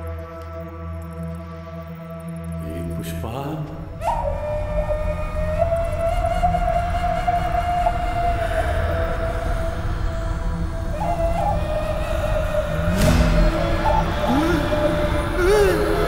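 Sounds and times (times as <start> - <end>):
wavering high tone: 10.8 - 16.0.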